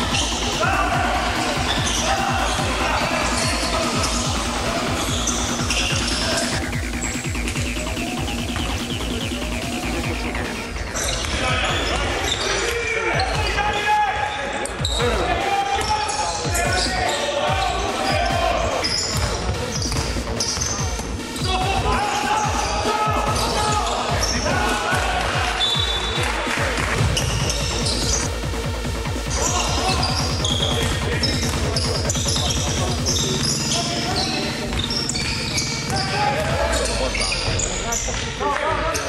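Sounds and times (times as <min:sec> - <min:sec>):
people shouting: 0:00.0 - 0:07.1, 0:11.4 - 0:19.4, 0:21.4 - 0:28.3, 0:29.2 - 0:38.0
basketball bouncing on wooden court: 0:19.0 - 0:21.0, 0:29.4 - 0:38.3.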